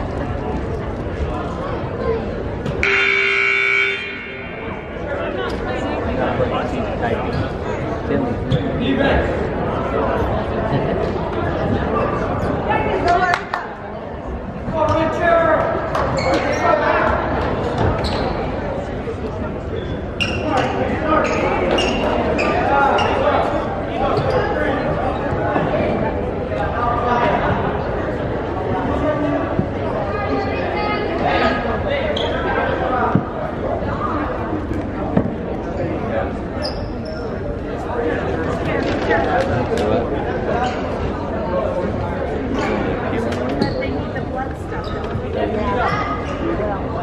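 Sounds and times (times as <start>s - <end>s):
chatter of voices: 0.0s - 47.0s
indistinct voices: 1.0s - 8.5s.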